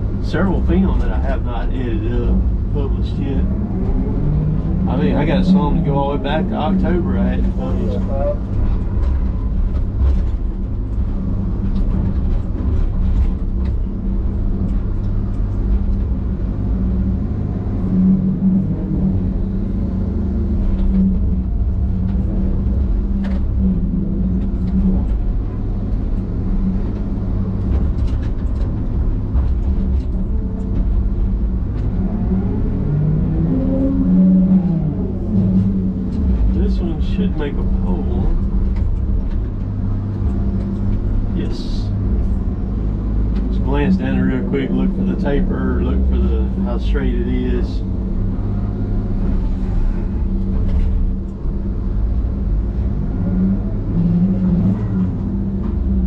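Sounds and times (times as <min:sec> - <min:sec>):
diesel engine running under load: 0:00.0 - 0:56.0.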